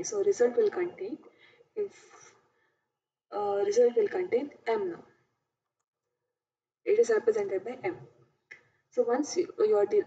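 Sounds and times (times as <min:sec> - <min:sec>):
woman speaking: 0:00.0 - 0:02.4, 0:03.3 - 0:05.3, 0:06.9 - 0:08.2, 0:08.9 - 0:10.0.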